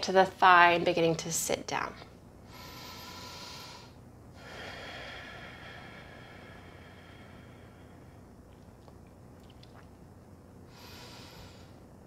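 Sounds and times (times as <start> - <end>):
woman breathing: 2.4 - 8.5, 10.6 - 12.0.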